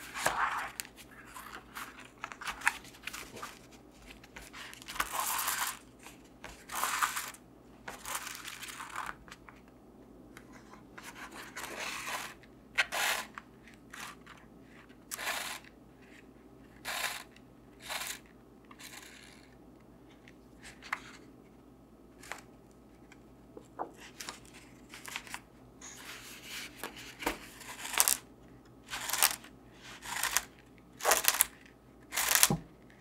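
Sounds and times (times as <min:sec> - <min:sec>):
paper rustling: 0:00.0 - 0:09.5.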